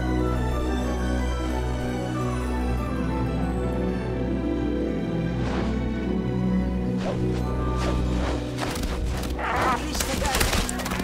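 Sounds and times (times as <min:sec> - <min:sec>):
orchestral film music: 0:00.0 - 0:11.0.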